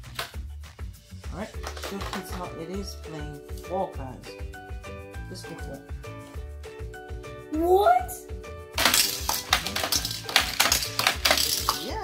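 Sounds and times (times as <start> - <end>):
background music: 0.0 - 12.0
toy cars clattering from launcher: 8.8 - 12.0.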